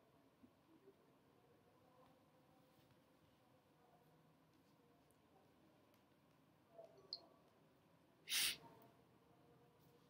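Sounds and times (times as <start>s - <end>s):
short burst of hissy noise: 8.3s - 8.6s.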